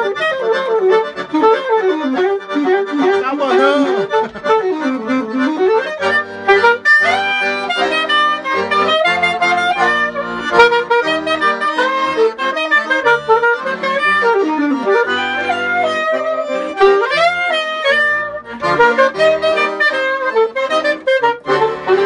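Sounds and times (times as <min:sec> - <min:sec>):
alto saxophone: 0:00.0 - 0:22.0
piano accordion: 0:00.0 - 0:22.0.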